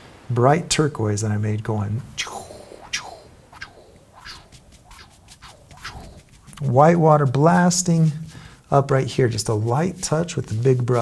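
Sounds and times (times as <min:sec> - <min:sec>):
paintbrush strokes on canvas: 0:02.0 - 0:11.0
quick light brush dabs: 0:02.2 - 0:11.0.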